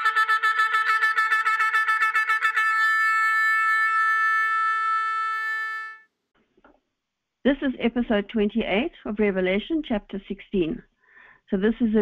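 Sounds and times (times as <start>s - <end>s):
brass horn playing: 0.0s - 6.1s.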